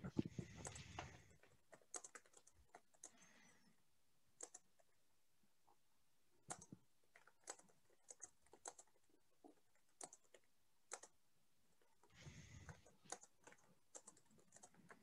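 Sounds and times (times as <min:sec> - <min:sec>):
faint computer keyboard typing: 0:00.4 - 0:05.0, 0:06.3 - 0:15.0.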